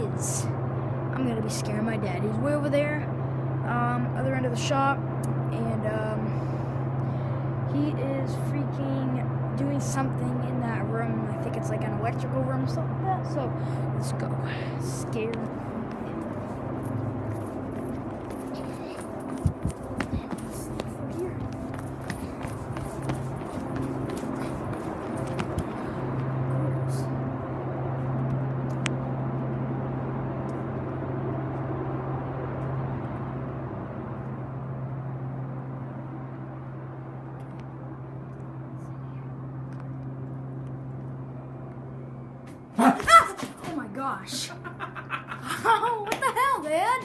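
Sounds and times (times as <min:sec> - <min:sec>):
low electrical hum: 0:00.0 - 0:47.0
footsteps on concrete floor: 0:15.3 - 0:26.3.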